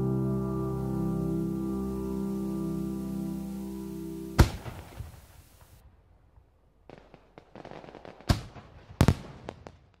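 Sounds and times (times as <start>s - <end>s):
fireworks bangs and crackles: 6.8s - 10.0s.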